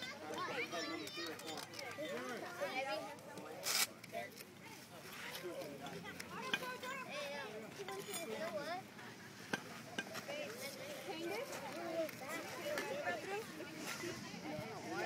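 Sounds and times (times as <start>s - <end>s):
children and adults chattering: 0.0s - 15.0s.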